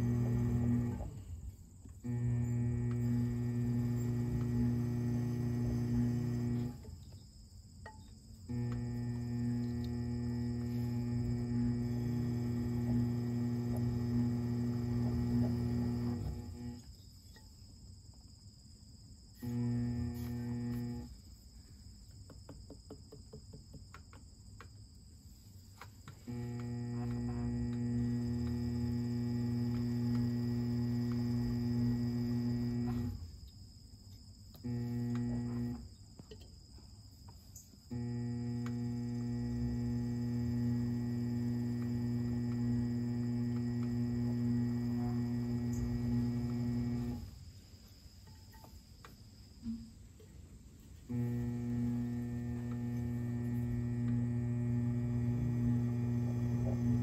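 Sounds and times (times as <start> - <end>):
potter's wheel motor humming: 0.0 - 7.2, 7.9 - 16.9, 19.4 - 21.2, 25.8 - 33.5, 34.5 - 36.0, 37.5 - 47.5, 51.0 - 57.0.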